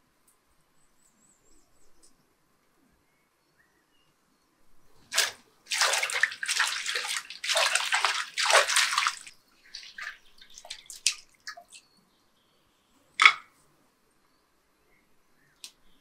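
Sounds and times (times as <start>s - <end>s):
water splashing in a bowl: 5.0s - 11.8s
water dripping: 5.1s - 11.9s.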